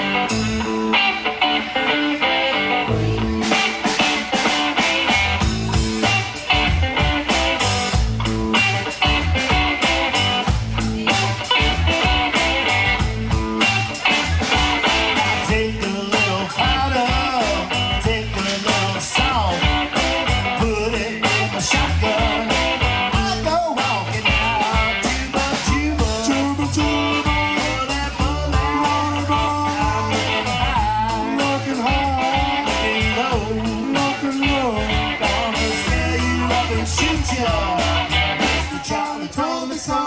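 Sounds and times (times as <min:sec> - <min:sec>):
drum kit beat: 0:00.0 - 0:40.0
electric bass: 0:00.0 - 0:40.0
man singing: 0:14.0 - 0:40.0.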